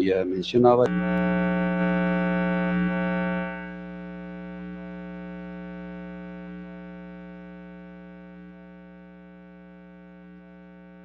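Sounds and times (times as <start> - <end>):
electronic buzzing drone: 0.8 - 11.0.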